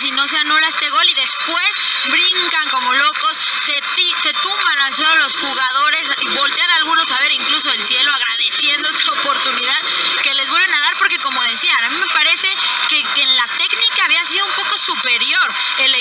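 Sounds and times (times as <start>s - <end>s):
radio sports commentary: 0.0s - 16.0s.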